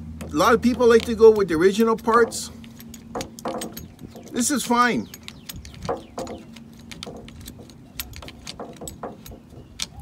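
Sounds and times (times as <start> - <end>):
hex key clicking on metal: 0.7 - 10.0.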